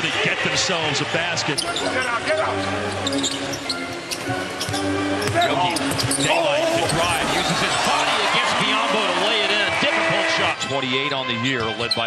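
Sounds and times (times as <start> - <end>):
arena crowd noise: 0.0 - 3.0, 5.3 - 12.0
sneakers squeaking: 1.6 - 7.9.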